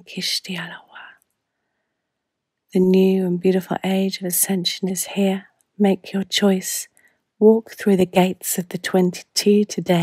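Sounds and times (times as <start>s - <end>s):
woman's soft breathy speech: 0.0s - 1.2s.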